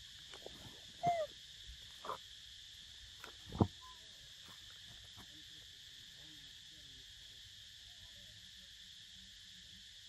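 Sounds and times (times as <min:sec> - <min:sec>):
high insect buzz: 0:00.0 - 0:05.6
macaque coo call: 0:01.0 - 0:01.4.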